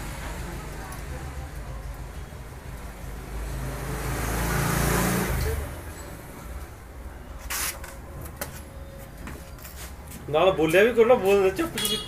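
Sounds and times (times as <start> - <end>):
road vehicle passing by: 0.0 - 8.7.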